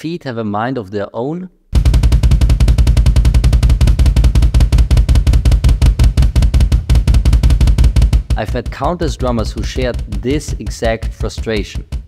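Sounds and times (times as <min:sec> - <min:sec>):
bass drum double pedal: 0:01.8 - 0:12.0.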